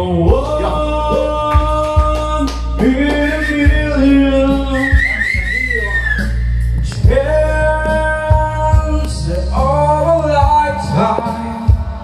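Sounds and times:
karaoke backing track: 0.0 - 12.0
man singing into a microphone: 0.0 - 12.0.

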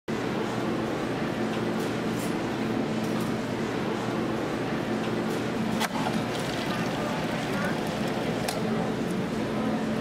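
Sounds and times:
soda fountain humming: 5.8 - 9.7
drink pouring: 5.9 - 8.9.

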